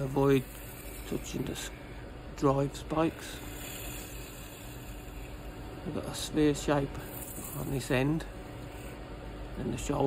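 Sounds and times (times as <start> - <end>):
faint motor hum: 0.0 - 10.0.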